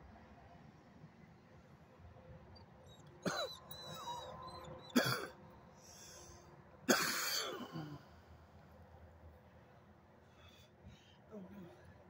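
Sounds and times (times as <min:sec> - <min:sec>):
person coughing hard: 0:03.2 - 0:03.6, 0:05.0 - 0:05.4, 0:06.9 - 0:08.0.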